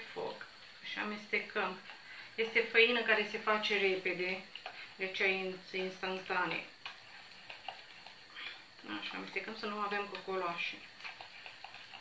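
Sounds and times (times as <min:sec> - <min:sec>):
utensil scraping a pot: 0:01.2 - 0:12.0.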